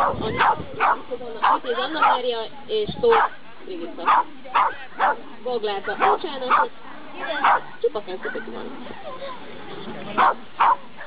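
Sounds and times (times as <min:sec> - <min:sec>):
woman speaking: 0:00.0 - 0:04.7, 0:05.4 - 0:08.9.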